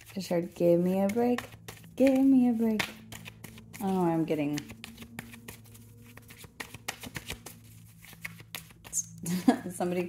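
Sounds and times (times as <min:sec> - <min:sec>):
cards being shuffled: 0:00.0 - 0:09.2.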